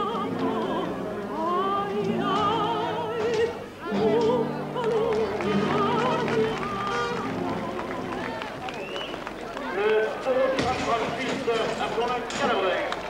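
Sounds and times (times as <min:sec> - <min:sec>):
person singing with vibrato: 0:00.0 - 0:08.4
accompanying music: 0:00.0 - 0:09.2
many people talking: 0:00.0 - 0:13.0.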